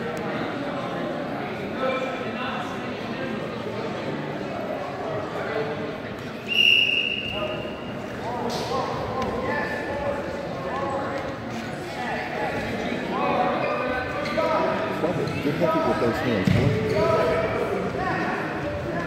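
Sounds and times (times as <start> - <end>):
voices and shouts echoing: 6.5 - 19.0.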